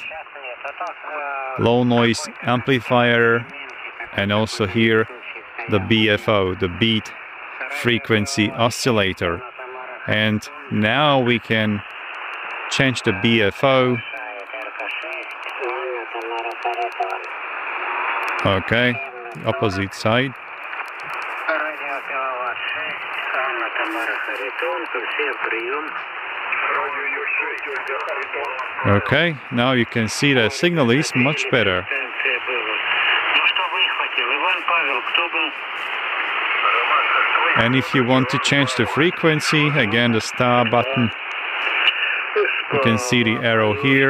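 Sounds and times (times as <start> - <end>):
thin narrow-band radio voice: 0.0 - 11.9, 12.7 - 17.2, 18.4 - 20.4, 21.4 - 26.0, 26.6 - 35.6, 36.6 - 44.0
radio hiss: 0.0 - 44.0
thin radio voice: 18.4 - 20.3, 21.4 - 26.0, 41.7 - 44.0.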